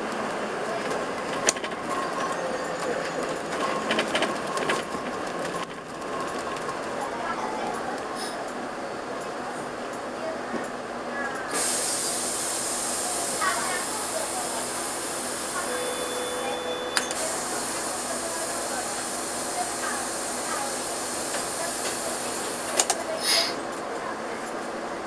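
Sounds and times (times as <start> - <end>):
air hissing inside a bus: 8.0 - 8.7, 11.4 - 24.9.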